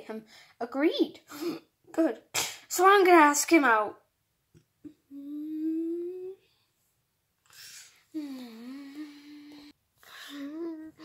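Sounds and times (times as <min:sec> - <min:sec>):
person humming rising note: 0:05.1 - 0:06.4, 0:08.2 - 0:09.7.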